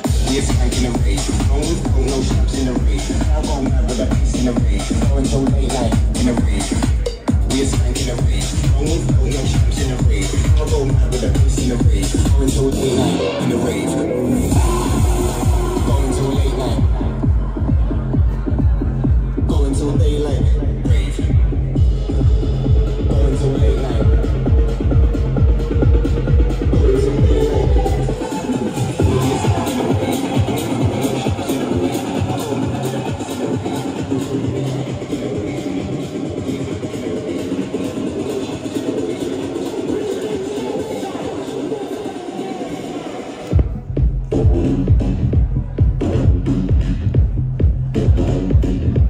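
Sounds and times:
electronic dance music: 0.0s - 49.0s.

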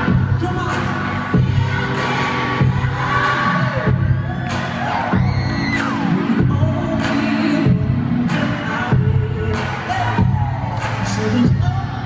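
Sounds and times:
crowd noise: 0.0s - 12.0s
live pop music with male singer: 0.0s - 12.0s.

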